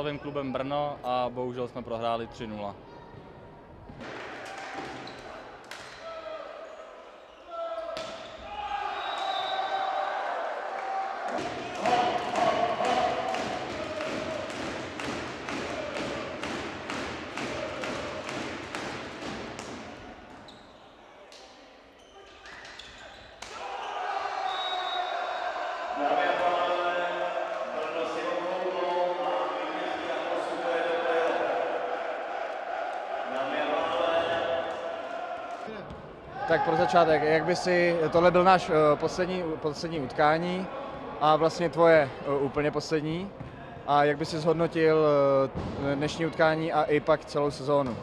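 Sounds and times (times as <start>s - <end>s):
spectators chanting: 10.2s - 18.8s, 23.5s - 35.7s
rhythmic clapping: 11.7s - 19.7s.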